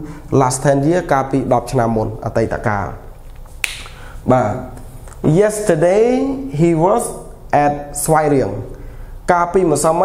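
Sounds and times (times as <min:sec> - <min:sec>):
sharp click: 0:03.3 - 0:04.0
man speaking: 0:04.2 - 0:08.7, 0:09.3 - 0:10.0.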